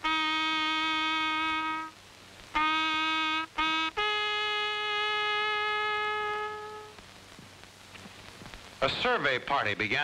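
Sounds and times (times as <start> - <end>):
brass instrument long note: 0.0 - 7.0.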